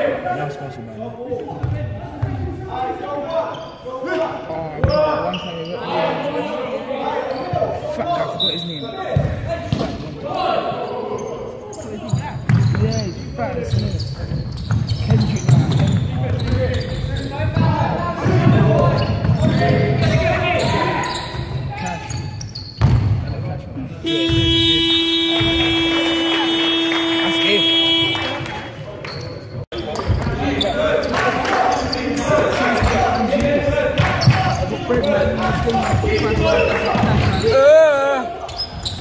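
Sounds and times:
people talking: 0.0s - 22.3s, 23.2s - 38.6s
basketball bouncing on wooden court: 1.6s - 2.4s, 13.7s - 20.8s, 22.8s - 23.2s, 24.1s - 24.7s.

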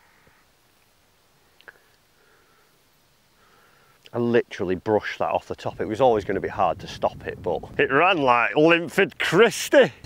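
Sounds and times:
faint tick: 1.6s - 2.0s.

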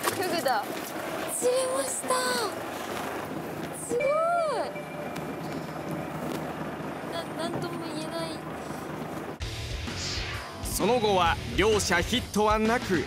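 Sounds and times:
boat at sea in wind: 0.0s - 9.4s.

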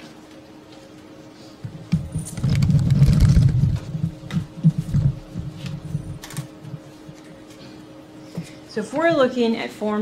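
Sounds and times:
camera handling rumble: 1.9s - 6.5s.

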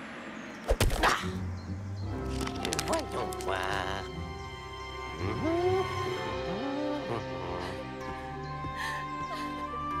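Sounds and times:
background music: 1.2s - 10.0s.

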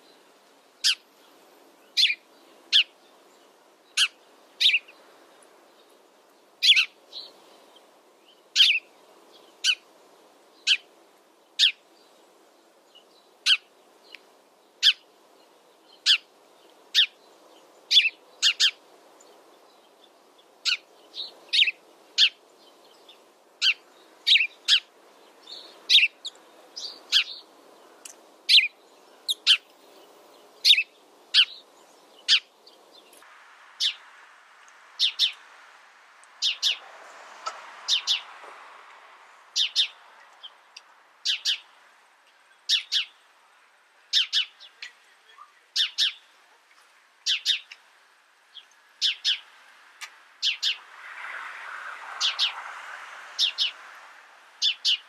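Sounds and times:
faint background noise: 0.0s - 55.0s
sparrow chirping: 0.8s - 9.9s, 10.5s - 34.1s, 34.9s - 35.5s, 36.3s - 36.8s, 37.4s - 38.3s, 39.4s - 43.3s, 44.0s - 46.4s, 47.2s - 50.8s, 52.2s - 52.6s, 53.4s - 53.8s, 54.5s - 55.0s.

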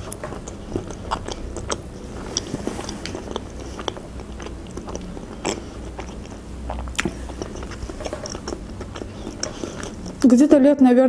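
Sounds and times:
chewing with wet mouth clicks: 0.0s - 10.4s.

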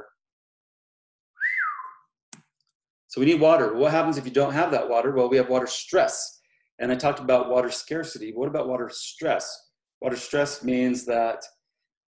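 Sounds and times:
short rising whistle: 1.4s - 2.1s.

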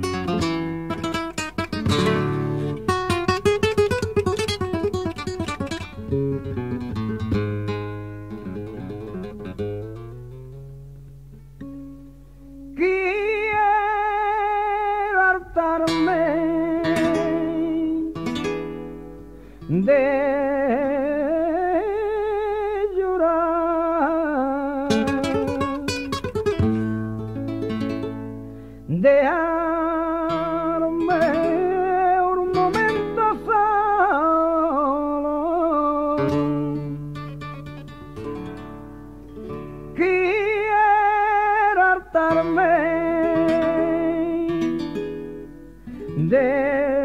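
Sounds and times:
man singing flamenco: 0.0s - 9.8s, 12.7s - 19.0s, 19.6s - 38.6s, 39.5s - 47.0s
flamenco guitar playing: 0.0s - 47.0s.

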